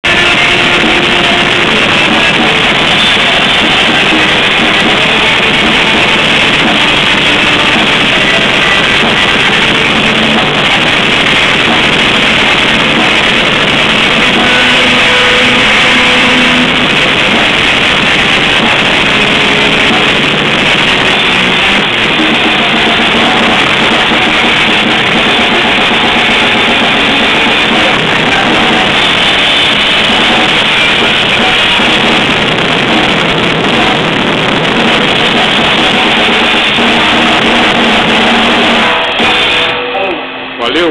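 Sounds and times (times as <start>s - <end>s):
cymbals: 0.0s - 40.8s
distorted electric guitar: 0.0s - 40.9s
drum kit: 0.0s - 40.9s.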